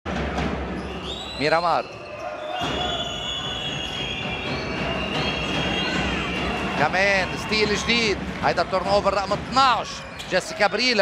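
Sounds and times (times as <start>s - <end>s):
arena crowd noise: 0.1s - 11.0s.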